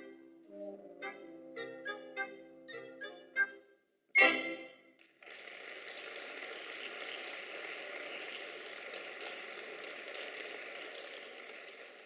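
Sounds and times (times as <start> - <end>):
audience applauding: 5.0 - 12.0.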